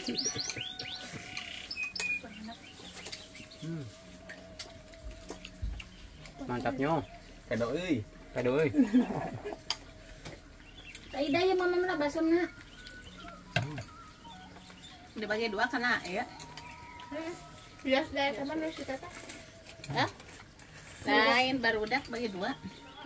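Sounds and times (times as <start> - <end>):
cutlery clinking against dishes: 0.0 - 2.2, 16.0 - 17.1
voices talking and calling: 0.0 - 23.0.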